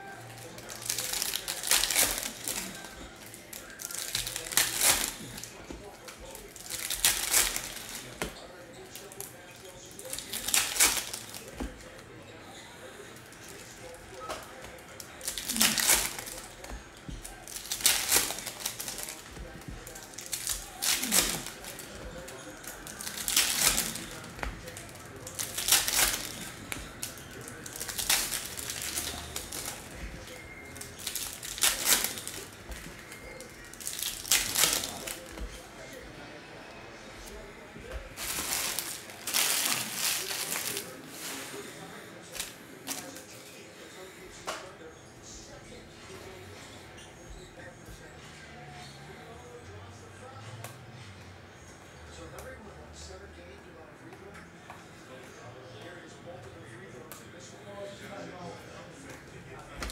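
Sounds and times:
foil wrappers crinkling: 0.0s - 12.1s, 12.8s - 35.7s, 37.2s - 43.6s.

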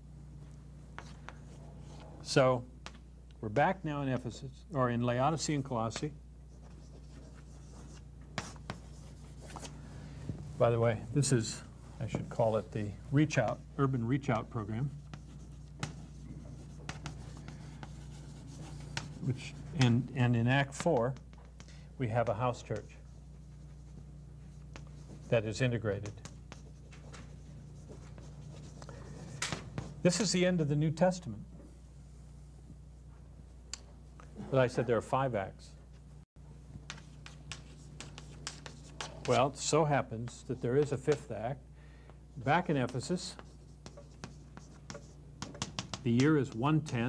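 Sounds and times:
low steady hum: 0.0s - 47.0s
chalk tapping on chalkboard: 14.3s - 20.0s, 25.9s - 28.8s, 36.8s - 41.3s, 42.6s - 46.7s.

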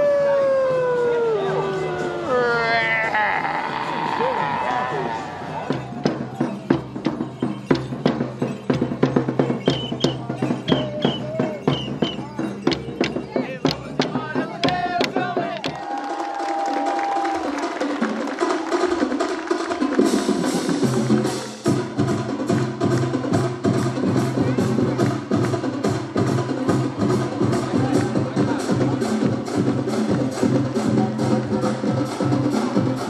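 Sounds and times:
person imitating wolf howl: 0.0s - 5.7s
voices: 0.0s - 7.6s, 9.4s - 15.8s
crowd chatter: 0.0s - 15.9s, 23.2s - 33.0s.

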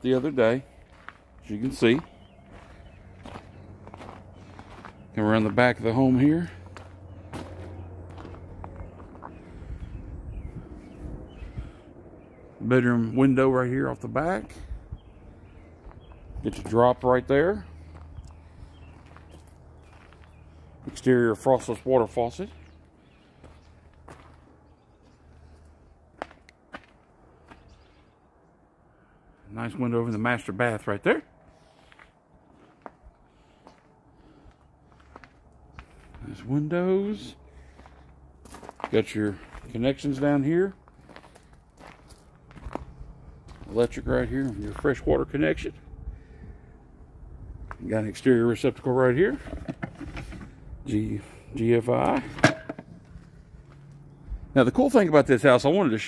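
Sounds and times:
footsteps on grass and gravel: 0.0s - 10.4s, 15.8s - 27.9s, 31.7s - 36.6s, 37.6s - 45.0s.

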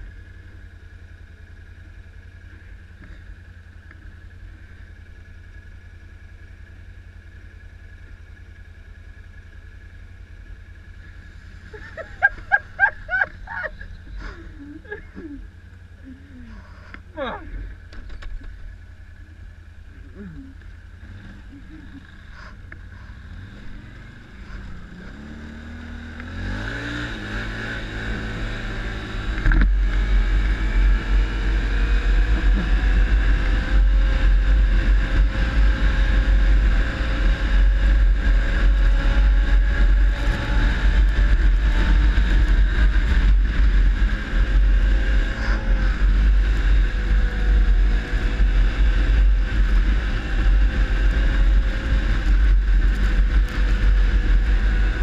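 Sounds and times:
atv engine revving: 9.2s - 55.0s.

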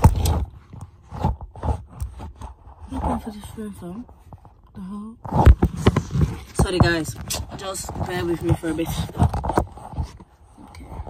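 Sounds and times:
scraping rub on microphone: 0.0s - 4.6s, 5.2s - 11.0s.

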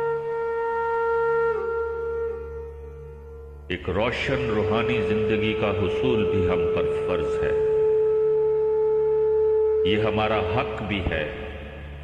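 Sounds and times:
man narrating: 3.7s - 7.8s, 9.8s - 11.6s.

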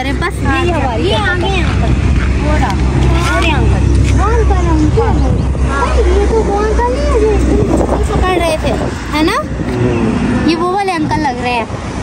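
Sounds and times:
low rumble: 0.0s - 12.0s
voices talking: 0.0s - 12.0s.

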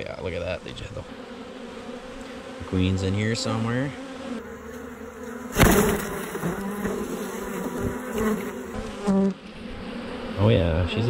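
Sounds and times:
honey bees buzzing: 0.0s - 11.0s
sharp knock: 5.5s - 6.0s.

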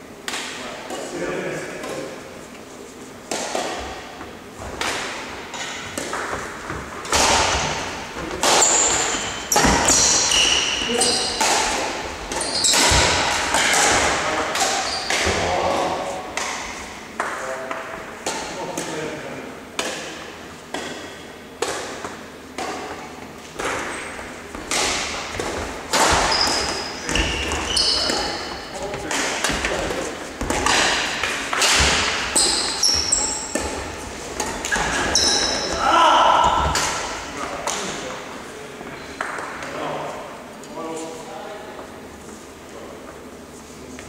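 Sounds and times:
rackets striking shuttlecock: 8.4s - 15.4s, 23.6s - 35.8s
shoes squeaking on wooden floor: 8.5s - 11.5s, 12.3s - 13.2s, 25.3s - 29.1s, 31.8s - 35.8s.

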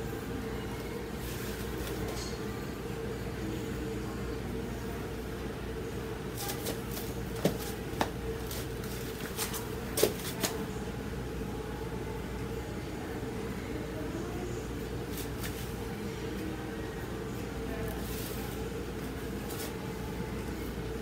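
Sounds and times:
room hum: 0.0s - 21.0s.

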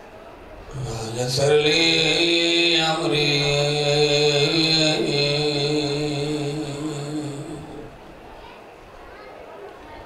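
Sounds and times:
man chanting into a microphone: 0.7s - 8.1s.

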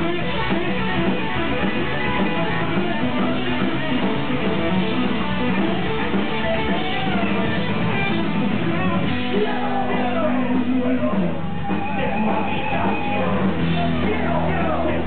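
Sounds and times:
bass guitar: 0.0s - 15.0s
strummed electric guitar: 0.0s - 15.0s.

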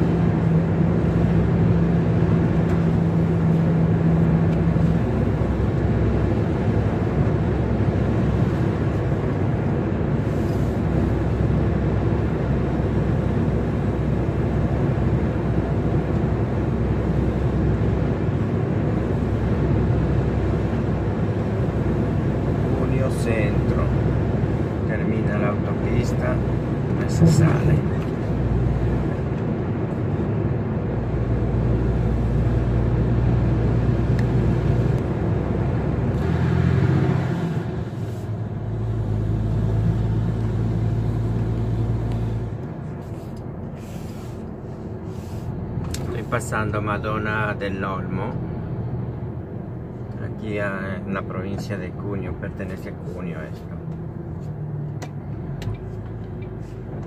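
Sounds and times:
lorry engine from inside cab: 0.0s - 57.0s.

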